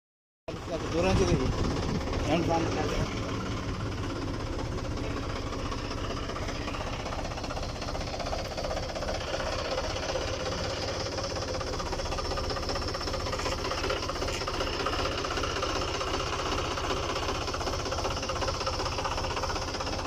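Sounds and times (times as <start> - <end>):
tractor diesel engine idling: 0.5 - 20.0.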